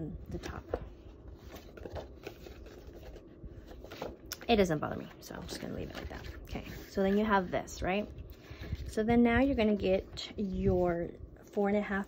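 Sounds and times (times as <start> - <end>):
card rustling and scraping: 0.3 - 9.0.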